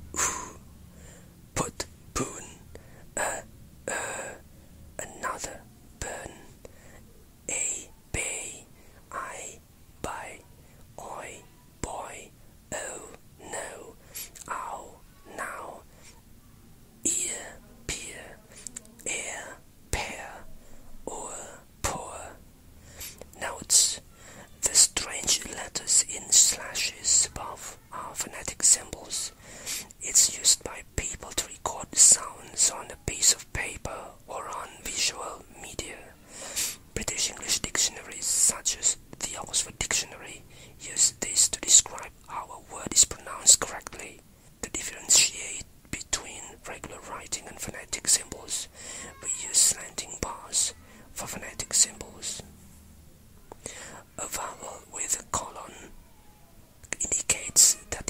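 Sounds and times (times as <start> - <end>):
person whispering: 0.2 - 0.7, 1.5 - 4.4, 5.0 - 52.6, 53.5 - 58.0.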